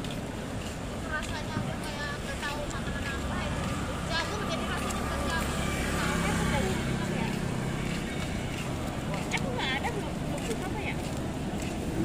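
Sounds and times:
voices of passers-by: 0.0 - 12.0.

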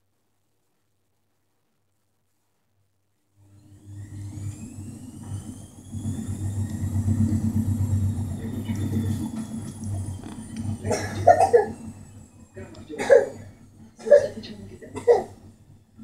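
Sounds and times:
low mechanical hum: 2.7 - 16.0
thin high whine: 3.2 - 16.0.

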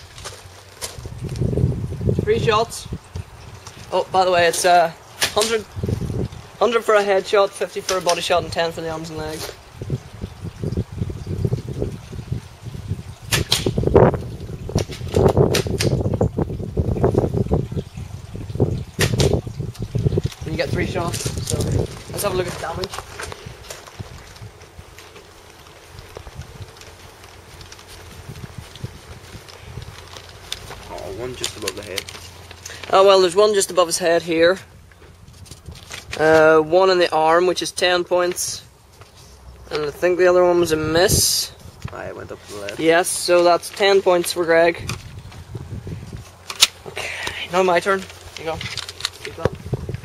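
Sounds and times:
sharp paper crackle: 0.0 - 1.6, 19.0 - 33.6, 35.2 - 36.5, 41.7 - 50.0
paper sheet handled: 20.2 - 33.7, 47.6 - 49.7
footsteps on grass: 21.0 - 32.6.

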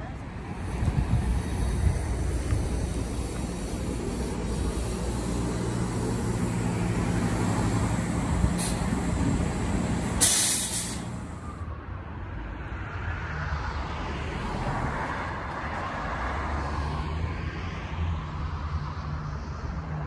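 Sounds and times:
bus engine humming: 0.0 - 11.6
air brake hiss: 3.0 - 6.8, 8.4 - 11.4.

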